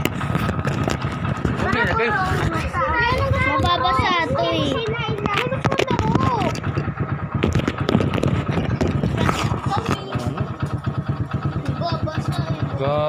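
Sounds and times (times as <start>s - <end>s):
small motorcycle engine running: 0.0s - 13.0s.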